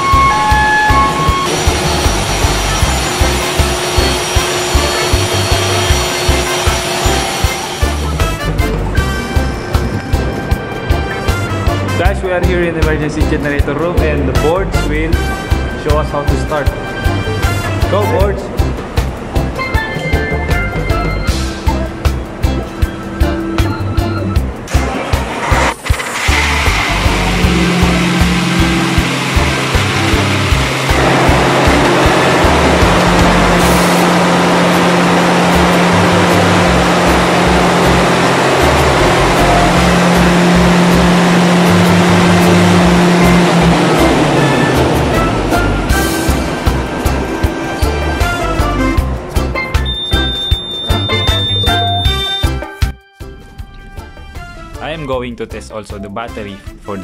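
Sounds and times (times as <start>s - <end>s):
diesel generator engine running: 0.0s - 11.9s, 16.4s - 52.6s
background music with steady beat: 0.0s - 25.6s, 26.2s - 57.0s.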